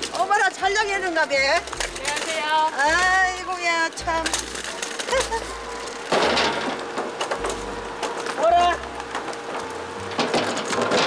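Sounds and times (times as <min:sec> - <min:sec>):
wire trolley rattling on pavement: 0:00.0 - 0:11.0.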